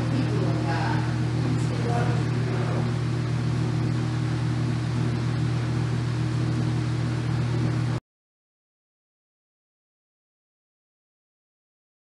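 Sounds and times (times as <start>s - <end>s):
steady low hum: 0.0s - 8.0s.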